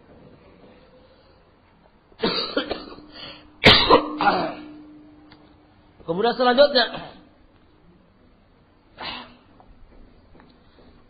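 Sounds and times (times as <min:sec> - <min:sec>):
person coughing: 0:02.2 - 0:04.8.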